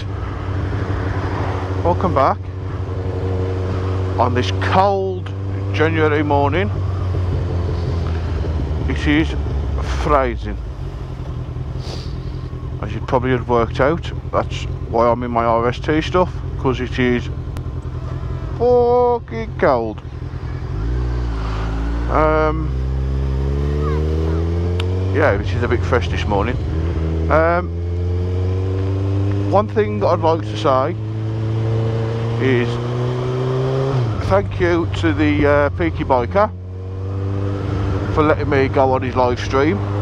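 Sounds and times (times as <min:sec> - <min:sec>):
motorcycle engine running: 0:00.0 - 0:40.0
wind and road noise: 0:00.0 - 0:40.0.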